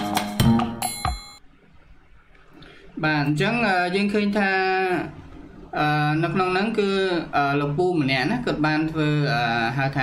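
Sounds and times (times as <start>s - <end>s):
high electronic ding: 0.4s - 1.4s.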